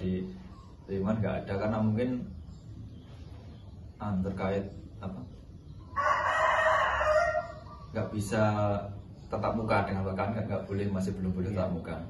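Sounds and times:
rooster crowing: 5.9s - 8.0s.

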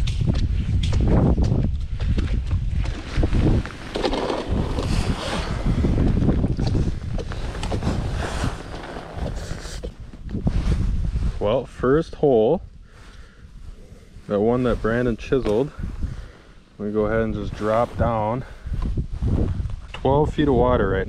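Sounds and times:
wind buffeting microphone: 0.0s - 21.0s
rustling: 6.7s - 11.3s.

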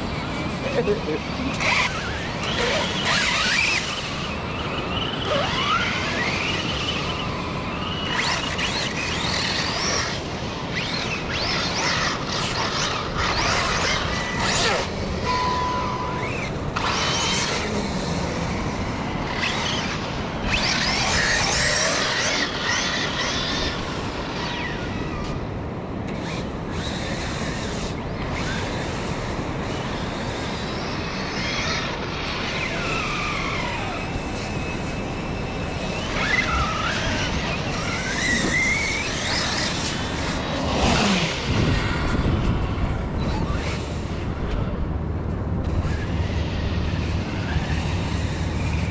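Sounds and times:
electric motors whining: 0.0s - 48.9s
wind: 0.0s - 48.9s.

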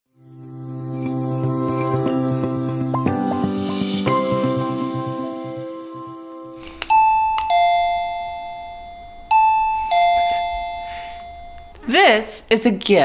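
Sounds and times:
doorbell ding-dong chime: 6.9s - 12.4s.

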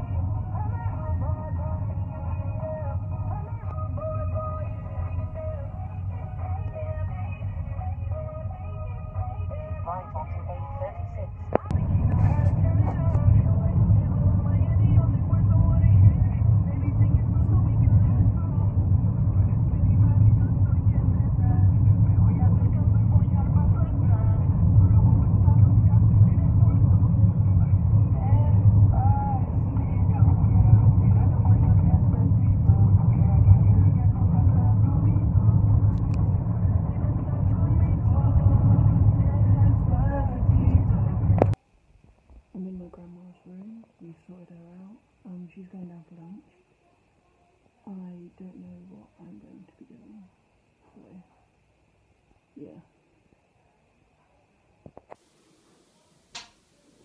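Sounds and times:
car driving rumble inside cabin: 11.5s - 41.6s.

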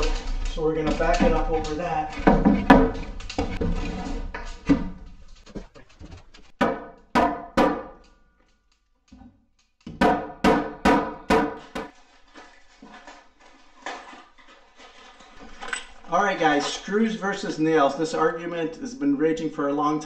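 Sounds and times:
hammer striking lumber: 6.6s - 8.0s, 9.9s - 11.9s.

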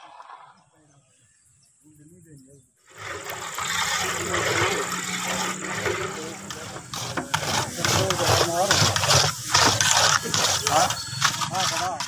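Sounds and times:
paddles stirring and scraping wheat: 2.8s - 12.0s
background voices: 3.2s - 12.0s.

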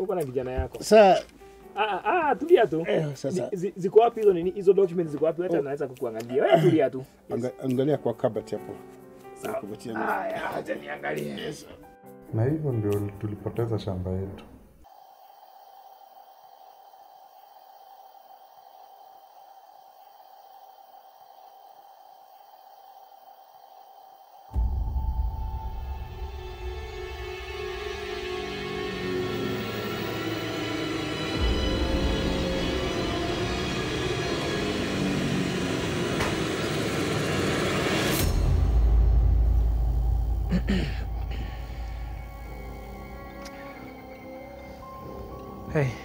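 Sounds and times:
light hiss: 14.8s - 24.6s
steady high tone: 14.8s - 46.0s
dark suspenseful drone music: 24.5s - 46.0s.

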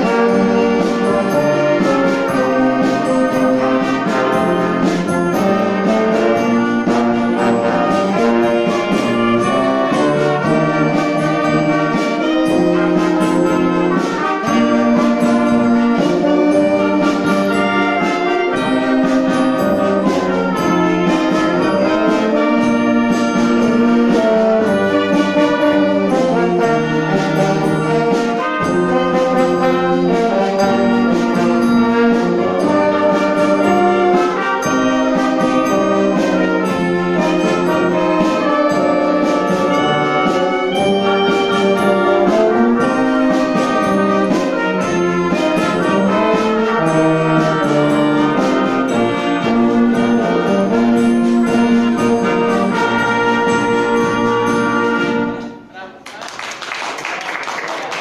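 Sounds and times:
wind band playing a carol: 0.0s - 55.7s.

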